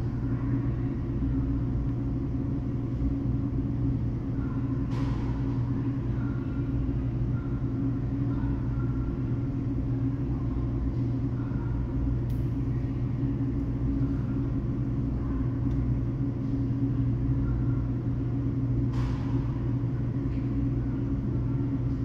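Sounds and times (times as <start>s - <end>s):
low machine hum: 0.0s - 22.0s.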